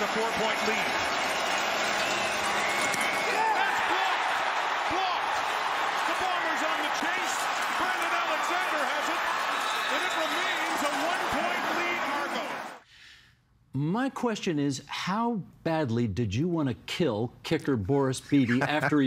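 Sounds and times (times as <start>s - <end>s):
stadium crowd cheering: 0.0s - 12.8s.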